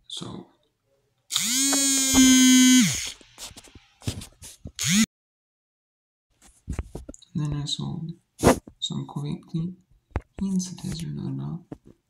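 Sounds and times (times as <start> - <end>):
smartphone vibrating buzz: 1.4 - 3.0, 4.8 - 5.1.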